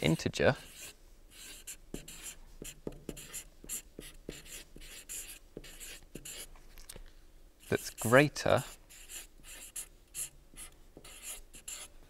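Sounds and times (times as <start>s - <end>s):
marker squeaking on whiteboard: 0.6s - 6.5s, 7.6s - 11.9s
marker tapping: 1.9s - 6.4s, 10.2s - 11.8s.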